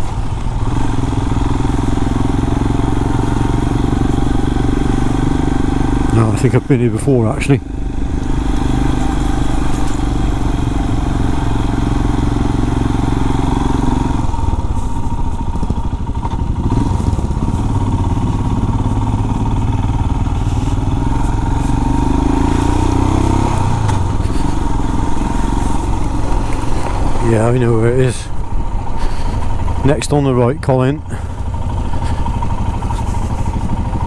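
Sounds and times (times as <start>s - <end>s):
motorcycle engine running: 0.0s - 34.0s
road and wind noise: 0.0s - 34.0s.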